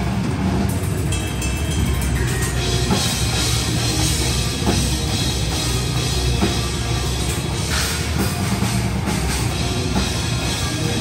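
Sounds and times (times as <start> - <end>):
distorted guitar and bass wall: 0.0 - 11.0.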